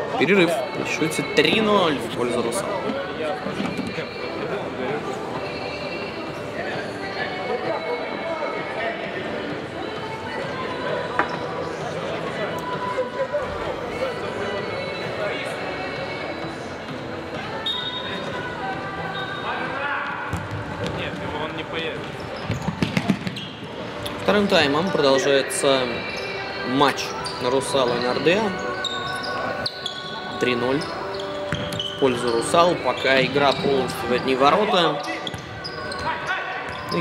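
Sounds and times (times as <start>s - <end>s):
indistinct voices echoing: 0.0s - 37.0s.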